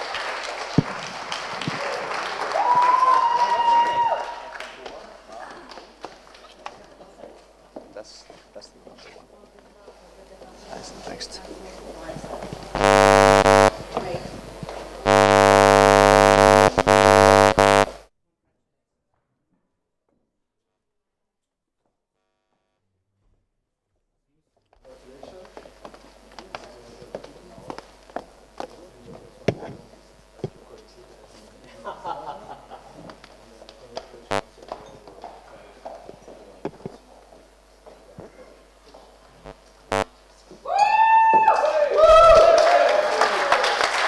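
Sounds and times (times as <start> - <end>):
horn-like buzzing drone: 12.8 - 18.0.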